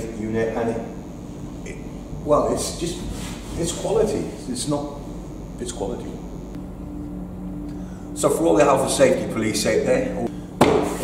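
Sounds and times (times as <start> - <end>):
low background hum: 0.0 - 11.0
faint held tone: 4.7 - 10.5.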